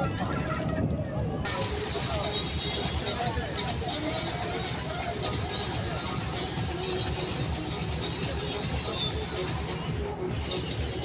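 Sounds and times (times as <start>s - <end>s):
boat engine running: 0.0s - 8.9s
people talking: 0.0s - 11.0s.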